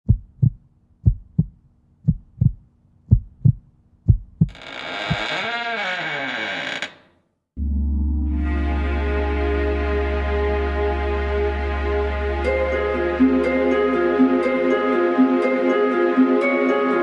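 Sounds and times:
heartbeat thumps: 0:00.0 - 0:04.6
sustained sweeping effect: 0:07.6 - 0:12.2
spooky music with low drone: 0:07.6 - 0:17.0.

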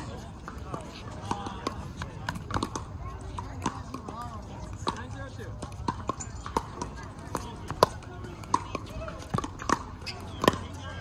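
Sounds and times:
murmur of voices: 0:00.0 - 0:11.0
paddles hitting plastic ball: 0:05.6 - 0:11.0.

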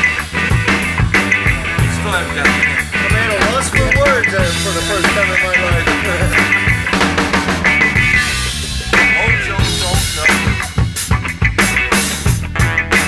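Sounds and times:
drum kit beat: 0:00.0 - 0:13.0
guitar bending melodic lines: 0:00.0 - 0:13.0.

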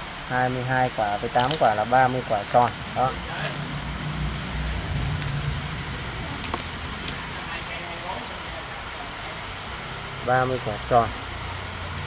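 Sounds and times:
low background hum: 0:00.0 - 0:08.0
capacitors clinking on concrete: 0:01.0 - 0:04.1, 0:06.4 - 0:07.3.

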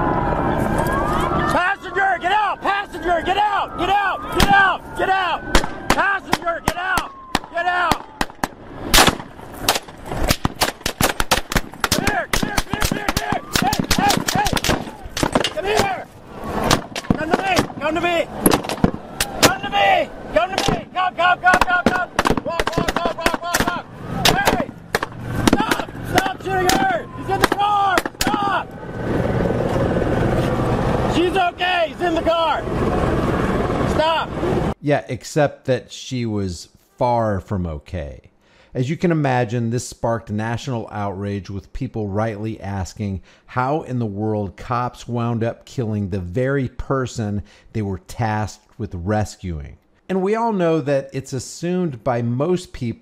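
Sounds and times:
men shouting commands: 0:01.3 - 0:08.2, 0:11.9 - 0:16.1, 0:17.1 - 0:18.4, 0:19.1 - 0:24.8, 0:25.4 - 0:28.7, 0:31.1 - 0:32.7, 0:33.9 - 0:34.3
rapid gunfire: 0:08.2 - 0:15.5, 0:21.5 - 0:25.9.

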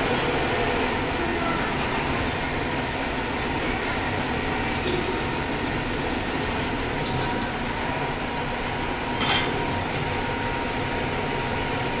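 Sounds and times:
machine running hum with whine: 0:00.0 - 0:12.0.

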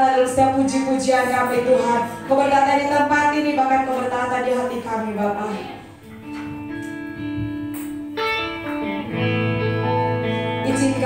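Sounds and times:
worship band instrumental: 0:00.0 - 0:11.0.

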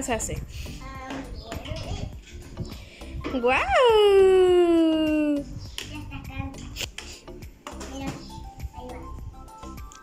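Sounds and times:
faint music: 0:00.0 - 0:10.0.

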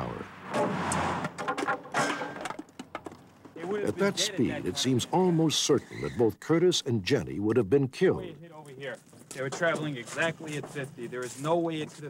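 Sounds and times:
man speaking: 0:00.0 - 0:00.3, 0:03.6 - 0:12.0
light knocks and clatter: 0:01.3 - 0:03.8.

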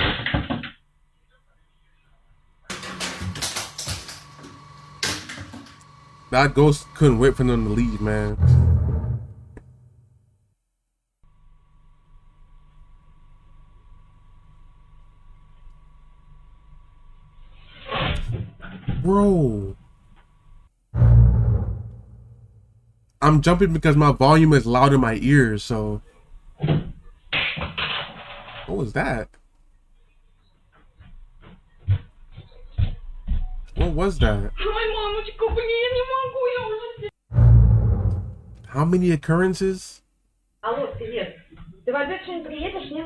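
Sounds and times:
sudden loud noise: 0:08.2 - 0:10.0, 0:20.9 - 0:22.9, 0:37.3 - 0:38.7.

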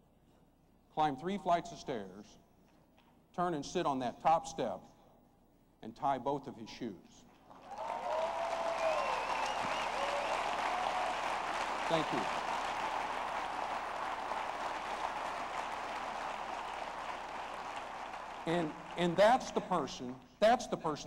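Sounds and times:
audience applauding: 0:07.5 - 0:19.5
voices over clapping: 0:07.6 - 0:19.1.

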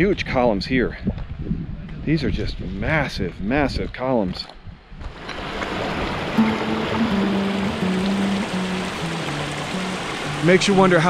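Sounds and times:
stream rushing over rocks: 0:05.1 - 0:11.0
music of held low notes: 0:06.4 - 0:11.0.

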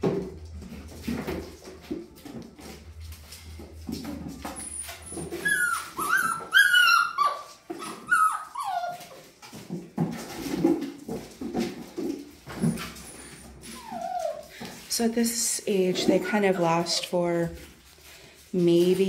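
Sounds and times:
puppies whining and yipping: 0:04.4 - 0:09.5, 0:12.5 - 0:14.9
lower-pitched puppy noises: 0:04.4 - 0:09.6, 0:12.6 - 0:15.0.

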